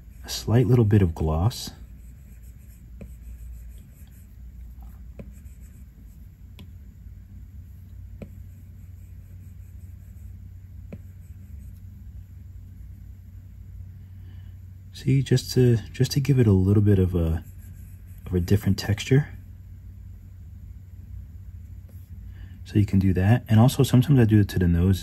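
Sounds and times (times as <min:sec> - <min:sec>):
steady low hum: 0:00.0 - 0:25.0
stylus tapping on glass screen: 0:05.1 - 0:05.4.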